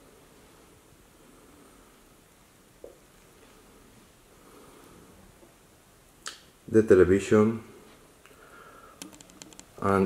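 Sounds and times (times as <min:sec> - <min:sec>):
man speaking: 0:06.7 - 0:07.8, 0:09.8 - 0:10.0.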